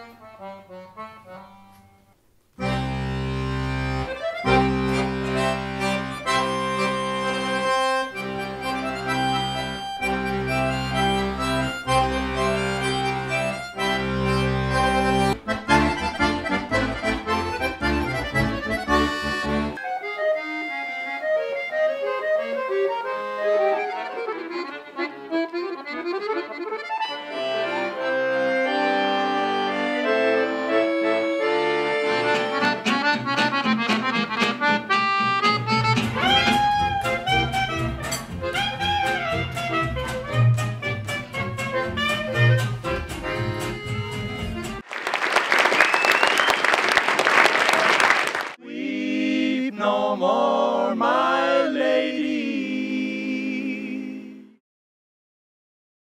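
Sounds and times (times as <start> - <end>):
accordion music: 0.0 - 54.6.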